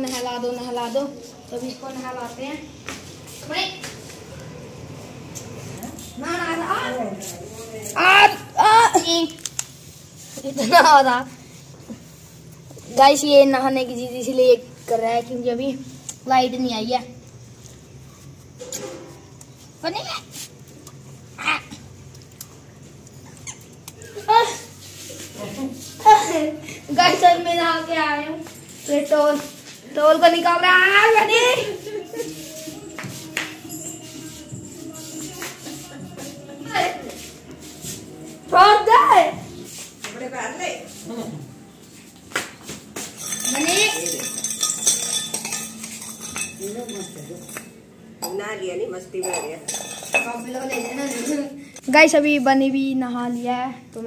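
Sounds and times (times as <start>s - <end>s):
metal chain leash clinking: 43.0s - 48.4s, 49.2s - 51.7s.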